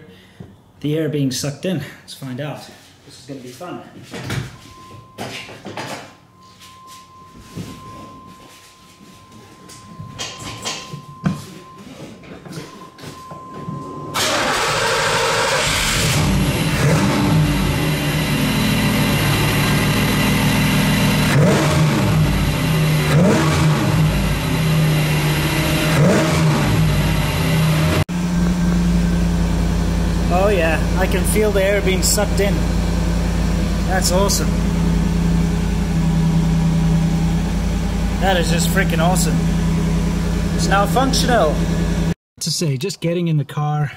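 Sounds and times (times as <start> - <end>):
car engine starting and running: 13.4 - 42.2.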